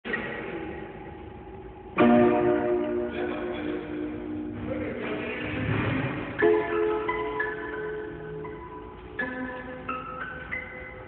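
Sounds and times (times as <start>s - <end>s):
keyboard notes and ringing chord: 0.4s - 11.0s.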